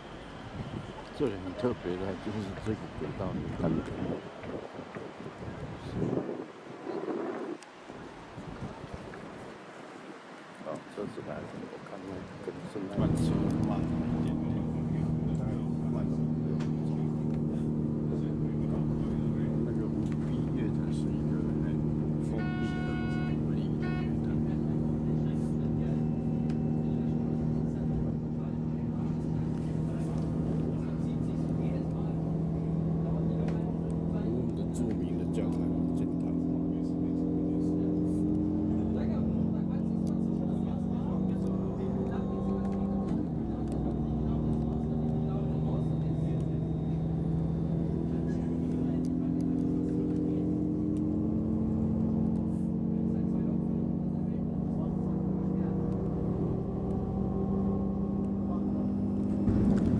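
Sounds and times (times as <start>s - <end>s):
electric train hum: 0.0s - 7.0s, 12.7s - 36.1s, 37.3s - 59.9s
wheels rumbling on rails: 0.0s - 59.9s.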